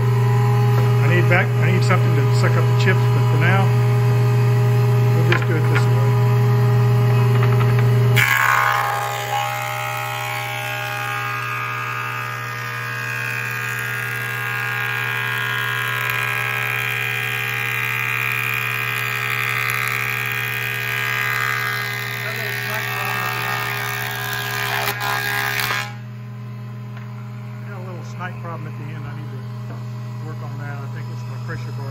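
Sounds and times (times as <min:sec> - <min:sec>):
planer cutting wood board: 0:00.0 - 0:04.0, 0:05.0 - 0:06.3, 0:07.1 - 0:26.0
planer motor humming: 0:00.0 - 0:26.0.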